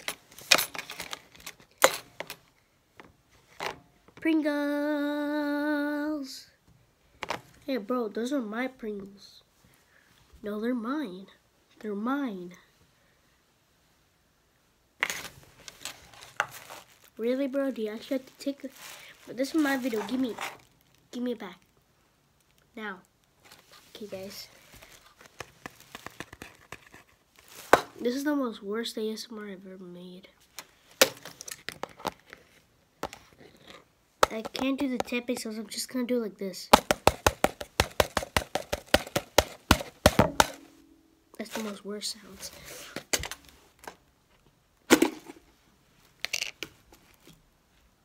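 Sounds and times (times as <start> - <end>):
sharp knock on can: 36.8 - 40.8.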